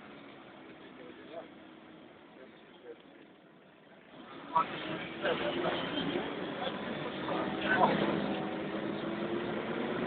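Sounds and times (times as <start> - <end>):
bus engine and transmission hum: 0.0 - 10.0.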